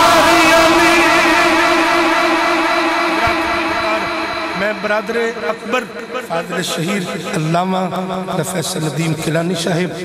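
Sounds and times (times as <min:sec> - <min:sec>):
man singing long note over loudspeaker: 0:00.0 - 0:07.5.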